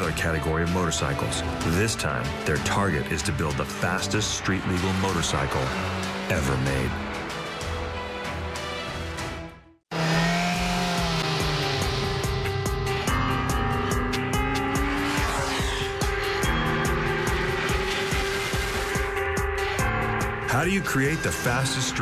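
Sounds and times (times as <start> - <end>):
motorcycle engine revving: 0.0 - 7.8, 9.9 - 20.4.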